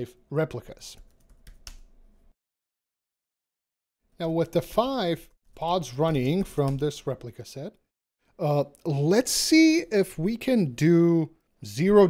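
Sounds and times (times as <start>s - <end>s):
typing on computer keyboard: 1.0s - 1.9s.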